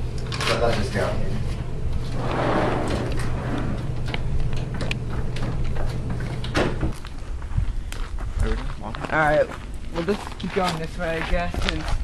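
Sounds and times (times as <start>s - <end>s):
steady low hum: 0.0s - 12.0s
door sliding open: 1.9s - 7.0s.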